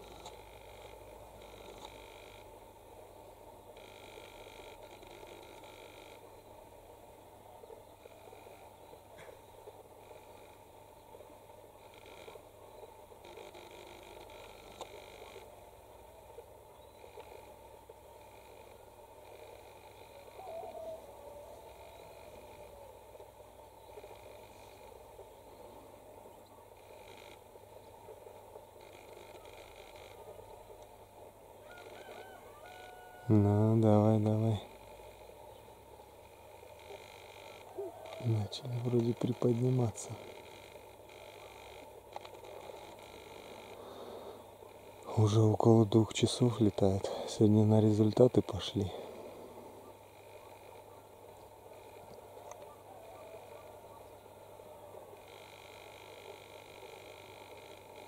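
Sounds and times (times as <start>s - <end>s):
outdoor background noise: 0.0s - 58.0s.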